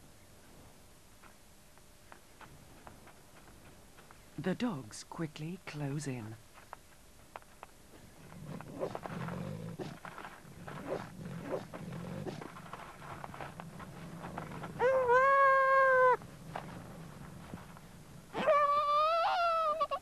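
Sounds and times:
scuffling on loose stones: 6.5s - 15.3s, 16.2s - 18.4s
dogs growling: 8.2s - 19.6s.

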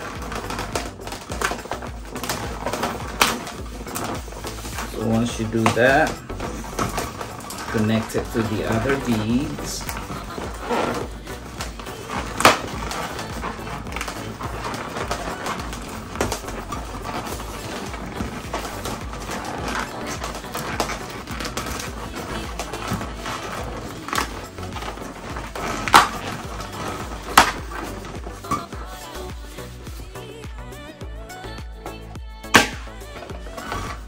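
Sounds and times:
background music: 0.0s - 34.0s
balloons squeaking and rubbing: 0.0s - 34.0s.

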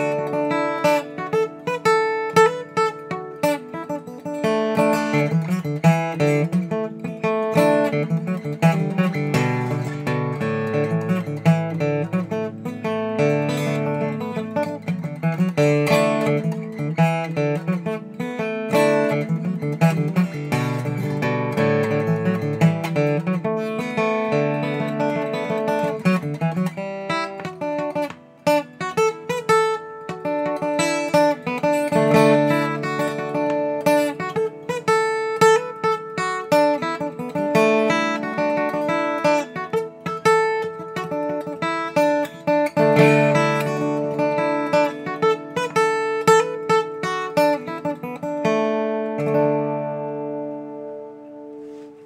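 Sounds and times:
acoustic guitar melody with chords: 0.0s - 52.0s.

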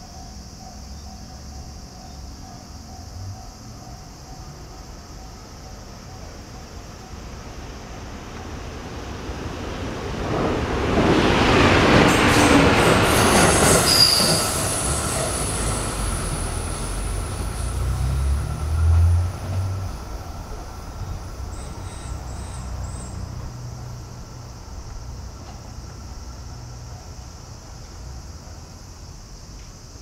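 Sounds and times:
train wheel and rail noise: 0.0s - 30.0s.

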